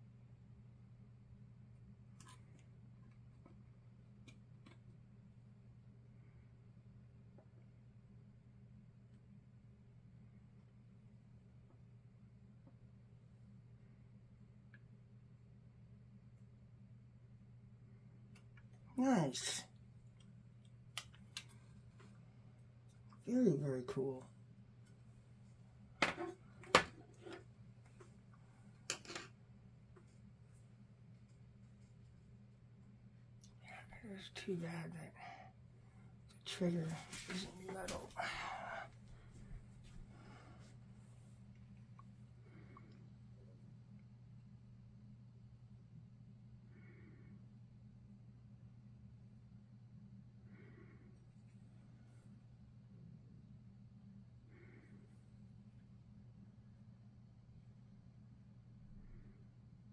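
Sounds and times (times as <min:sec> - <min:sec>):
steady low hum: 0:00.0 - 0:59.9.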